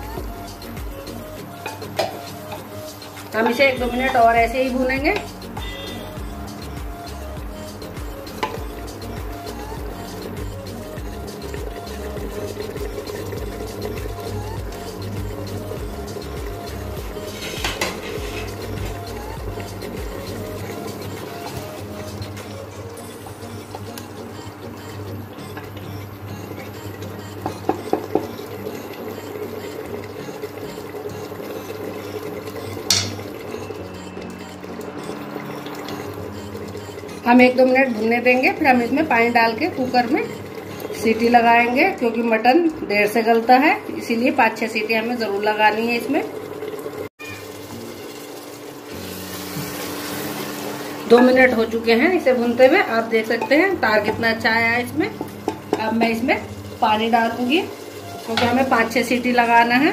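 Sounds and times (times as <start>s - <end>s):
spatula stirring: 0.0s - 42.6s, 47.2s - 59.9s
gravy sizzling and bubbling: 0.0s - 59.9s
spatula clinking against pot: 17.4s - 18.5s, 32.9s - 33.4s.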